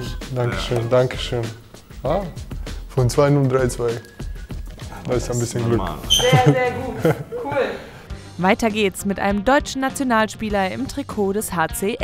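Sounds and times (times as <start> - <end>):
men laughing and speaking: 0.0 - 8.1.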